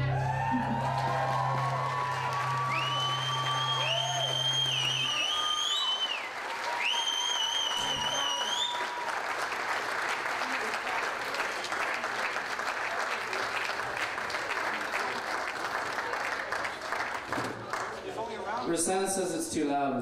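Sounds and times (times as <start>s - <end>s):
audience applauding: 0.0s - 18.6s
high whistles: 2.2s - 9.0s.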